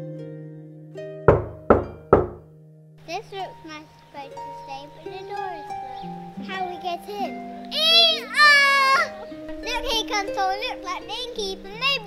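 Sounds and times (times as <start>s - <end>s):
soft background music: 0.0s - 12.0s
knocks on a door: 1.3s - 2.5s.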